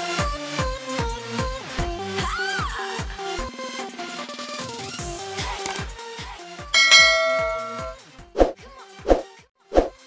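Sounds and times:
bright bell chime: 0:06.8 - 0:08.0.

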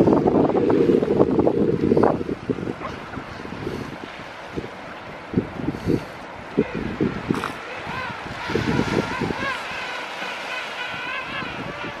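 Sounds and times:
surf: 0:00.0 - 0:12.0
wind: 0:00.0 - 0:12.0
penguins calling in chorus: 0:07.4 - 0:12.0.

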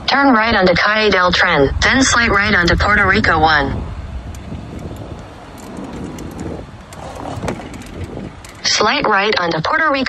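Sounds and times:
wind on microphone: 0:00.0 - 0:09.7
bicycle wheels rolling: 0:02.4 - 0:09.4
bike clicks and rattles: 0:04.1 - 0:09.2.

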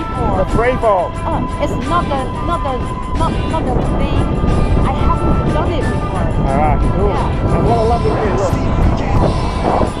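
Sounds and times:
background music: 0:00.0 - 0:10.0
voices: 0:00.0 - 0:10.0
wind buffeting microphone: 0:00.0 - 0:10.0.

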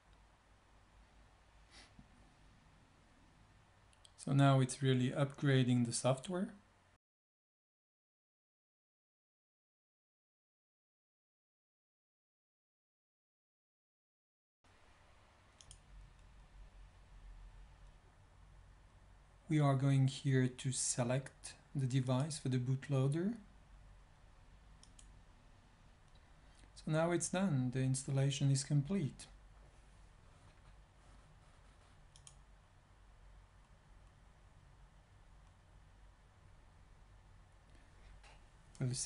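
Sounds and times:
low steady hum: 0:14.7 - 0:39.0
computer mouse click: 0:15.6 - 0:16.3, 0:24.8 - 0:25.2, 0:32.1 - 0:32.5.

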